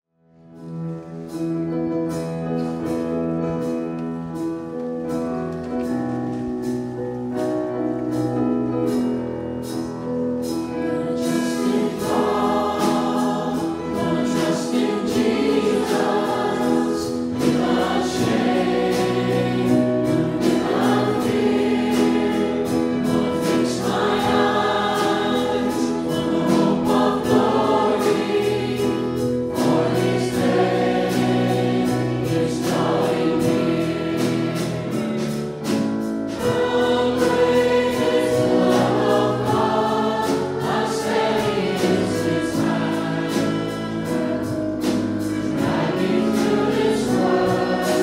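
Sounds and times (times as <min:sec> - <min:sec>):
instrumental backing with beat: 0:06.6 - 0:48.0
group singing worship song: 0:10.7 - 0:48.0.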